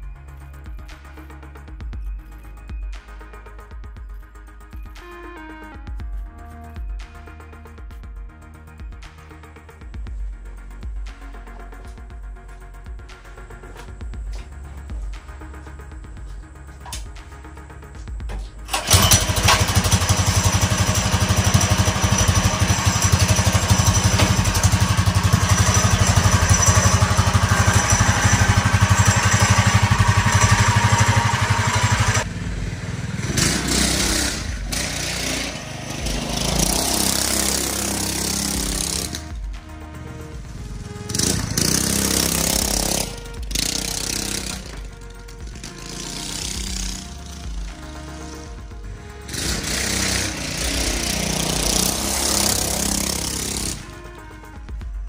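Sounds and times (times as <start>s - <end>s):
single-cylinder engine running loud: 18.7s - 54.3s.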